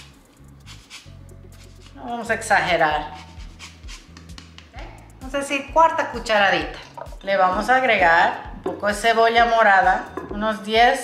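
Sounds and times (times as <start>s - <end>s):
lemon grated on hand grater: 3.0s - 4.2s.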